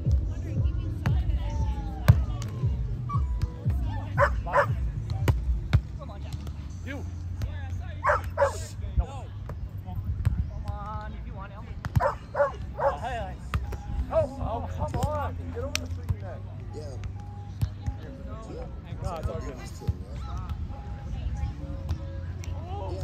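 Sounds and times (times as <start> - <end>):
dog barking: 4.2 - 4.8, 8.0 - 8.7, 12.0 - 13.1.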